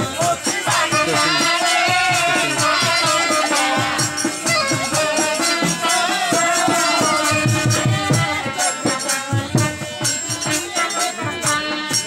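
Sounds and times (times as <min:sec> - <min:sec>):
harmonium chords: 0:00.0 - 0:12.0.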